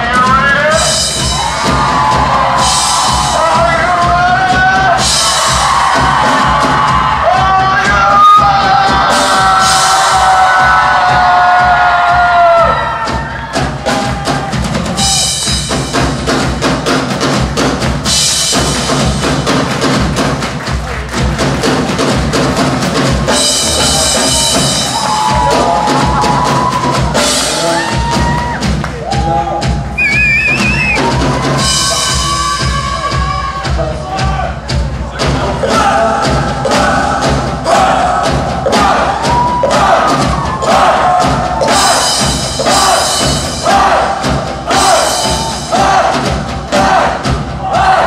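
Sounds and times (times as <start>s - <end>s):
rock drum solo: 0.0s - 48.0s.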